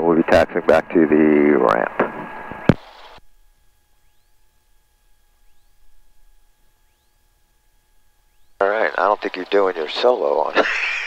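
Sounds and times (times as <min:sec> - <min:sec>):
faint steady electronic tone: 0:00.0 - 0:11.0
faint rising chirp: 0:03.9 - 0:04.6, 0:05.2 - 0:08.6.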